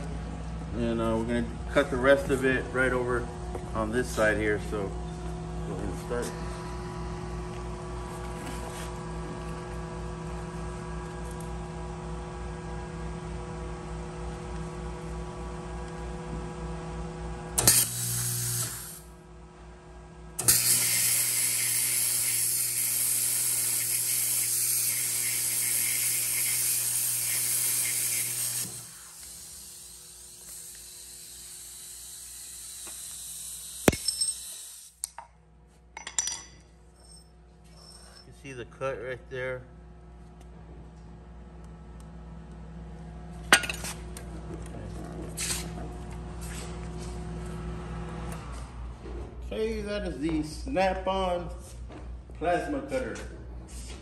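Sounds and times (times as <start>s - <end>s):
plasma arc cutting steel hiss: 17.6s - 19.1s, 20.4s - 35.0s
plasma cutter humming: 17.6s - 19.1s, 20.4s - 35.0s.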